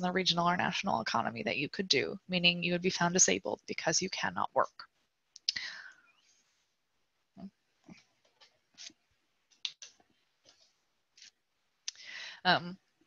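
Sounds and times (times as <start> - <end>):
breath close to microphone: 5.5 - 6.3, 11.9 - 12.5.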